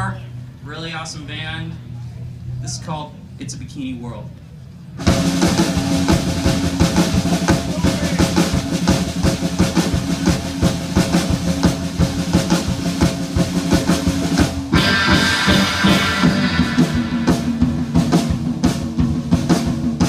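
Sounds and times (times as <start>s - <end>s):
band playing: 5.0s - 20.0s
drum kit beat: 5.0s - 20.0s.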